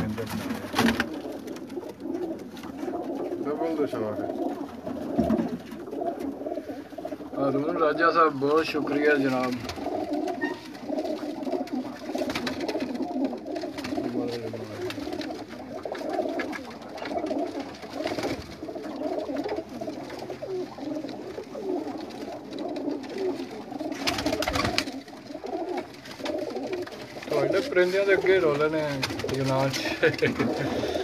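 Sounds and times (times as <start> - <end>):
pigeons cooing: 0.0 - 31.0.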